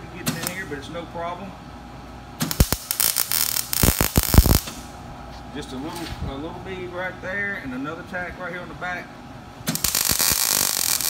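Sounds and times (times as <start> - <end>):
welder arc crackling: 2.4 - 4.9, 9.7 - 11.0.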